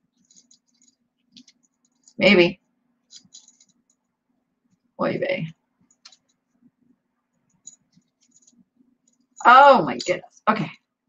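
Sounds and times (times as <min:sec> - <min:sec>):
necklace chain clicking: 0:00.2 - 0:02.2, 0:03.1 - 0:04.0, 0:05.9 - 0:06.4, 0:07.5 - 0:10.2.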